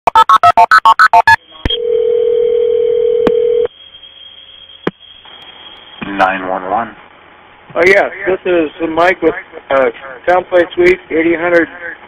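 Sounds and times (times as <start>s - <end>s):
keypad beeps: 0.0s - 1.8s
telephone ringing tone: 0.1s - 3.7s.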